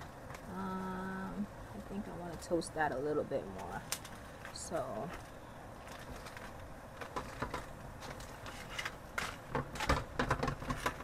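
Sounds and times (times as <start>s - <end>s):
aluminium foil crinkling: 0.0s - 11.0s.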